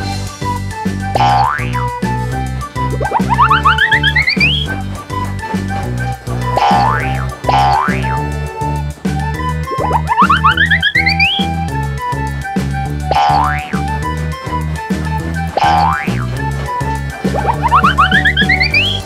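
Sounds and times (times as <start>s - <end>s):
bouncy cartoon music: 0.0s - 19.0s
cartoon boing sound effects: 1.2s - 2.0s, 6.7s - 8.0s, 13.1s - 13.9s.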